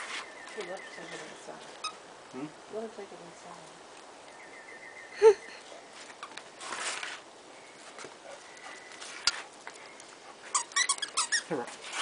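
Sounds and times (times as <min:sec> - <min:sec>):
short high squeaks: 0:10.5 - 0:12.0.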